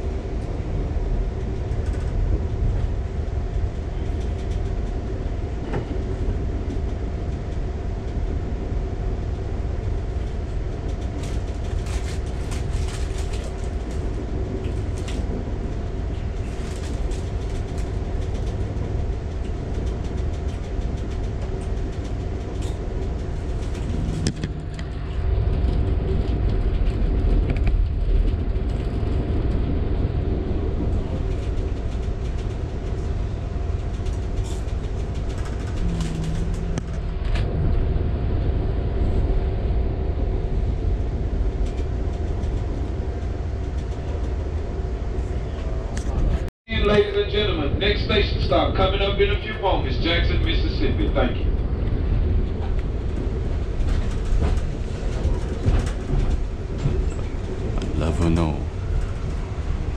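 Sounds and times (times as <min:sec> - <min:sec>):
train rumbling at speed: 0:00.0 - 0:59.9.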